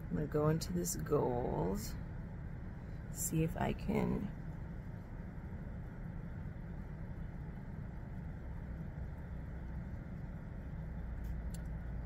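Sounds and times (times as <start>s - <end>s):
low room hum and hiss: 0.0s - 12.0s.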